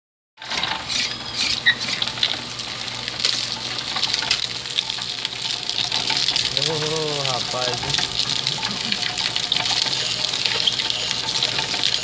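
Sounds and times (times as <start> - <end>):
juice gushing into bowl: 0.4 - 12.0
low motor hum: 0.7 - 12.0.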